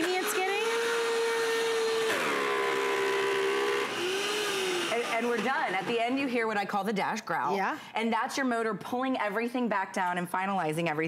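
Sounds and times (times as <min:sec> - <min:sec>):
blender motor running on high: 0:00.0 - 0:06.3.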